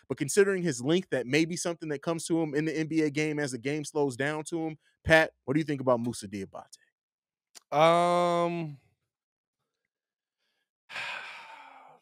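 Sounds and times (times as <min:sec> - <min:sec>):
man sighing: 0:10.9 - 0:12.0.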